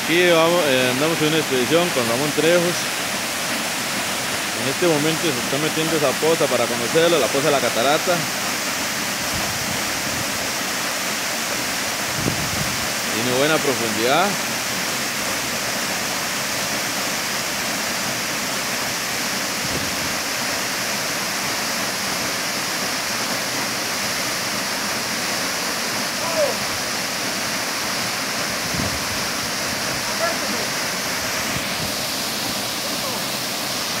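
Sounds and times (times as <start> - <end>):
waterfall rushing: 0.0 - 34.0.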